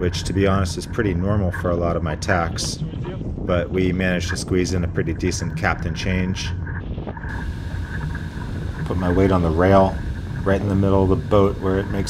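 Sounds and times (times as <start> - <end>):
wind rumbling on microphone: 0.0 - 12.0
water rushing along hull: 7.3 - 12.0.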